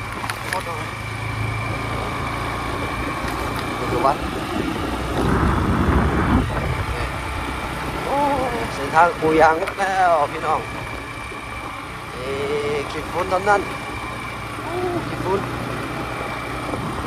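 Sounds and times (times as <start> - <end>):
small motorcycle engine running: 0.0 - 17.0
wind rumbling on microphone: 0.0 - 17.0.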